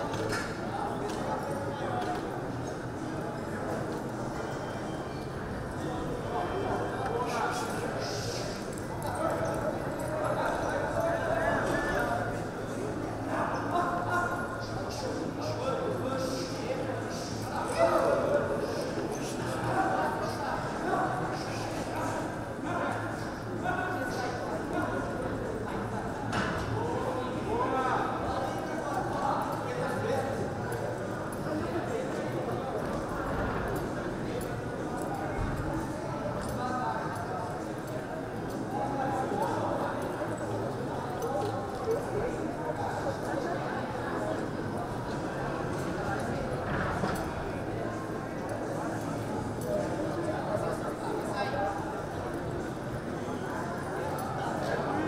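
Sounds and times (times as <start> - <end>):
murmur of voices: 0.0 - 55.0
people talking and calling: 0.0 - 55.0.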